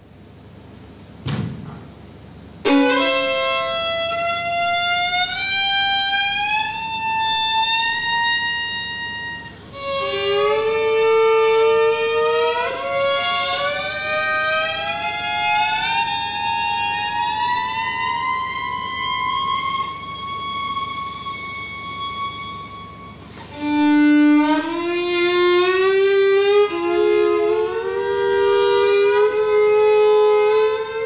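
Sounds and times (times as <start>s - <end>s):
violin upward glissando: 2.7s - 31.0s.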